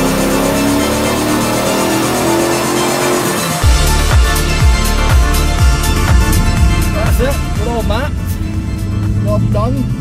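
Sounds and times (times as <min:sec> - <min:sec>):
electronic music rising sweep: 0:00.0 - 0:09.2
heavy bass beat: 0:00.0 - 0:09.5.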